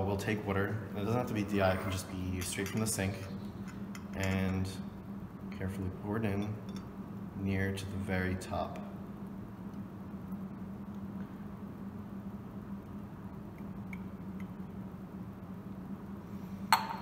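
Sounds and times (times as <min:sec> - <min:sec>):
steady low hum: 0:00.0 - 0:17.0
glass clink: 0:01.8 - 0:02.9, 0:16.7 - 0:17.0.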